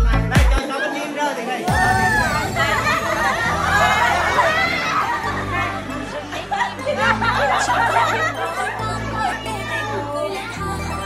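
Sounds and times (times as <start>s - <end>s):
music with steady bass line: 0.0s - 0.6s, 2.8s - 11.0s
children and adults chattering: 0.6s - 11.0s.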